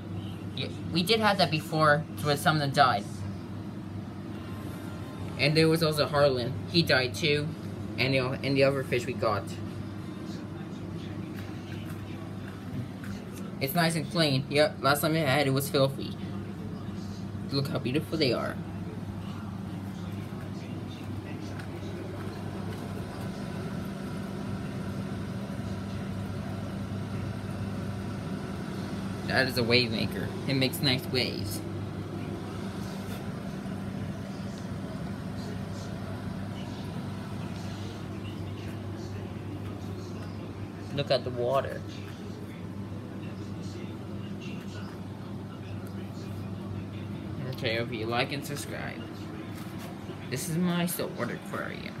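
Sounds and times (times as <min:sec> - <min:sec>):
aquarium pumps humming: 0:00.0 - 0:52.0.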